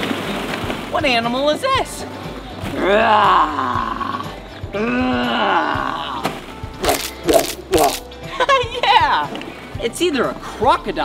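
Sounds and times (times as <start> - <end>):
background music: 0.0 - 11.0
laughter: 8.3 - 9.2.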